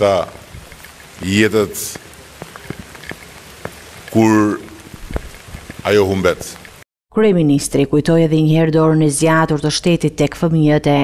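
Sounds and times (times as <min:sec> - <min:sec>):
steady rain falling: 0:00.0 - 0:06.9.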